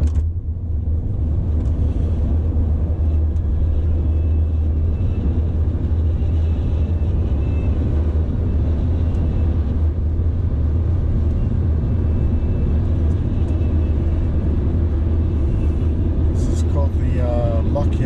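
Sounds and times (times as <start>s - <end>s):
car cabin road rumble: 0.0s - 18.0s.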